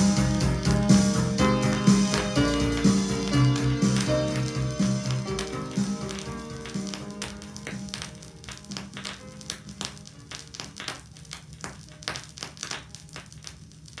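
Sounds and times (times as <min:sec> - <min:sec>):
song playing from vinyl record: 0:00.0 - 0:14.0
vinyl record crackle and pops: 0:00.0 - 0:14.0.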